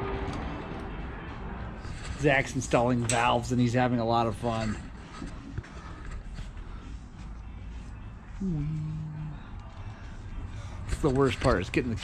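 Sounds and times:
low steady rumble: 0.0s - 12.0s
person humming briefly: 8.4s - 9.4s.

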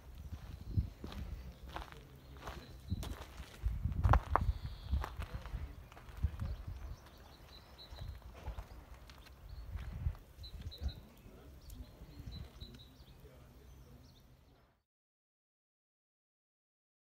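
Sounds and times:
footsteps on gravel: 0.0s - 10.8s
faint bird chirps: 4.3s - 14.8s.

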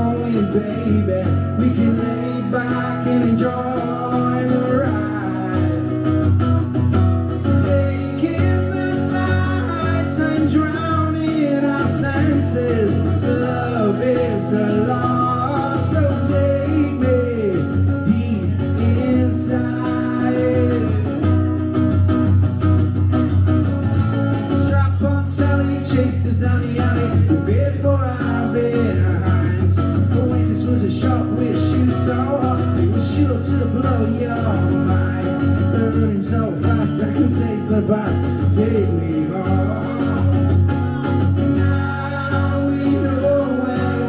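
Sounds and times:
man singing: 0.0s - 22.1s, 24.4s - 44.0s
acoustic guitar strumming: 0.0s - 44.0s.

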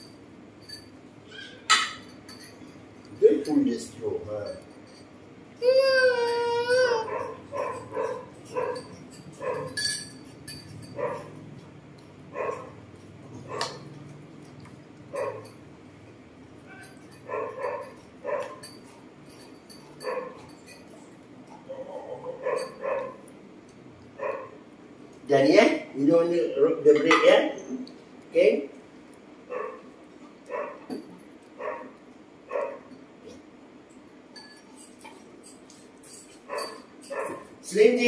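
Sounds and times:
animal high-pitched calls: 1.2s - 1.7s.

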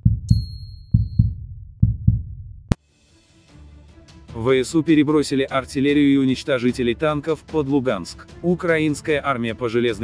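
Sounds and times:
deep thumps in pairs: 0.0s - 2.8s.

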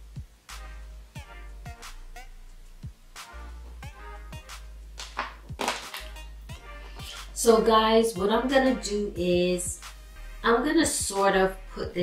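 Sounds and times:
drum machine beat: 2.8s - 7.3s.

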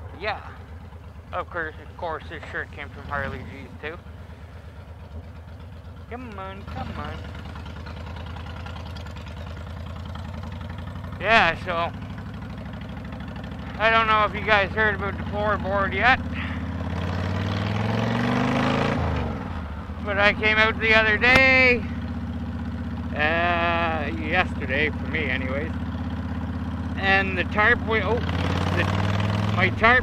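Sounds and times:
motorcycle engine idling: 0.0s - 30.0s.

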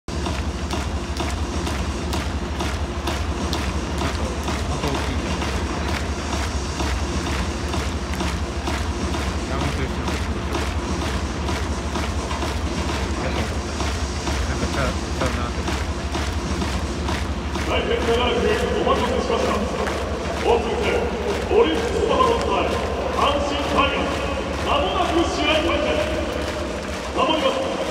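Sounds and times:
crowd chatter: 0.1s - 27.9s.

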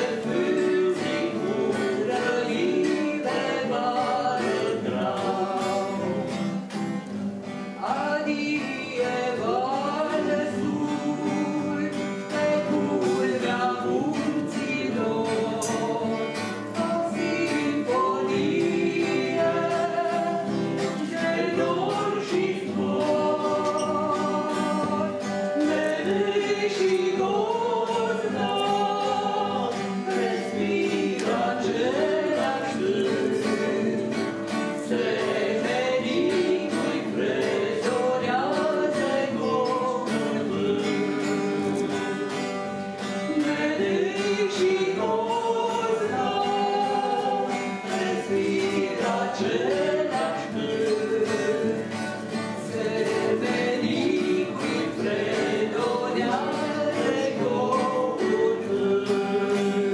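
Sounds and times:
choir singing: 0.0s - 6.9s, 7.8s - 59.9s.

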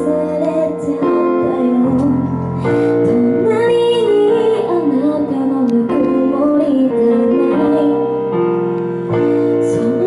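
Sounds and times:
woman singing into microphone: 0.0s - 8.4s, 9.2s - 10.0s.

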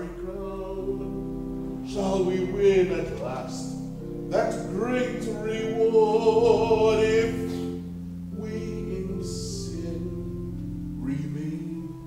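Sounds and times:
instrumental accompaniment: 0.0s - 12.0s
man singing a hymn: 0.0s - 12.0s.

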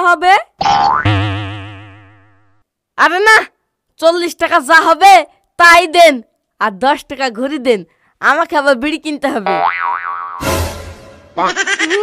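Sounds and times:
cartoon boing twang: 0.6s - 2.4s.

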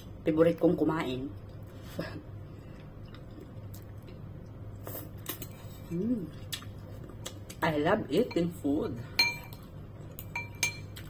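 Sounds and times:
cutlery clinking against bowl: 9.2s - 9.6s, 10.2s - 11.0s.

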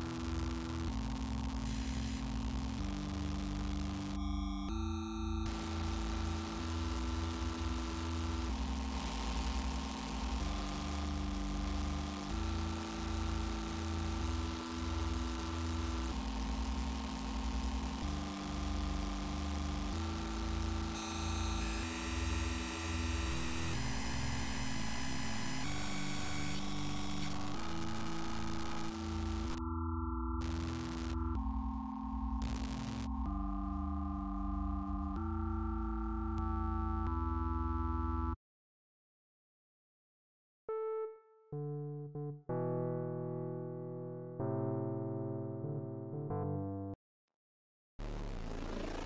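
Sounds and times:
synthesizer chords: 0.0s - 38.4s.

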